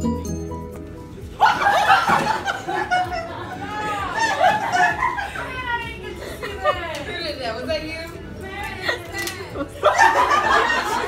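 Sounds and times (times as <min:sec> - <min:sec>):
young people laughing: 0:01.4 - 0:07.2, 0:08.7 - 0:11.0
young people talking: 0:01.6 - 0:11.0.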